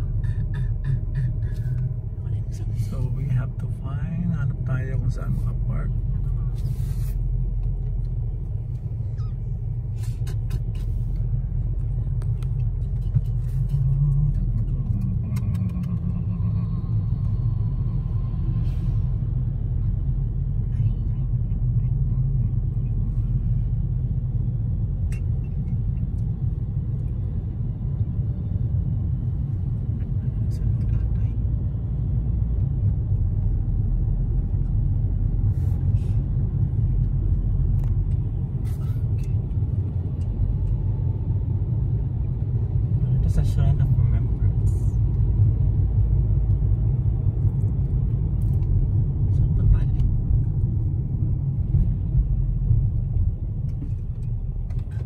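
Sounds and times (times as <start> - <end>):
car road and engine rumble: 0.0 - 55.0.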